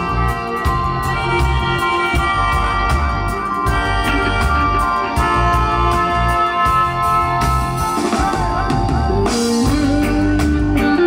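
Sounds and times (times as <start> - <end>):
live band playing: 0.0 - 11.0
melody with long sliding notes: 0.0 - 11.0.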